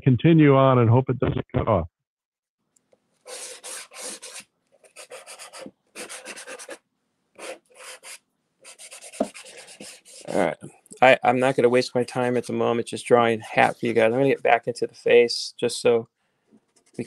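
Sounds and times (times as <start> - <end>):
pastel rubbing on textured board: 3.3 - 6.8, 7.4 - 10.4.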